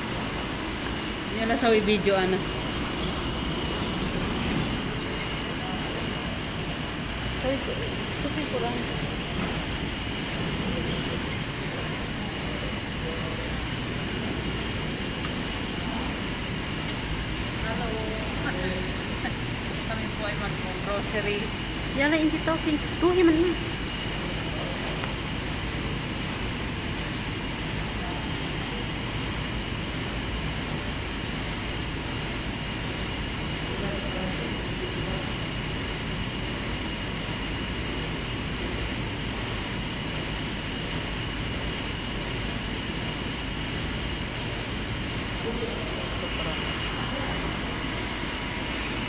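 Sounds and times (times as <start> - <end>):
ventilation drone: 0.0 - 49.0.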